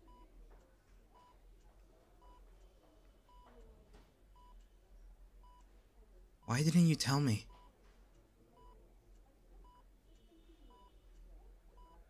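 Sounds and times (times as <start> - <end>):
patient monitor beeping: 0.0 - 0.4, 1.2 - 1.4, 2.2 - 3.6, 4.3 - 4.7, 5.4 - 5.7, 6.4 - 7.8, 8.5 - 12.0.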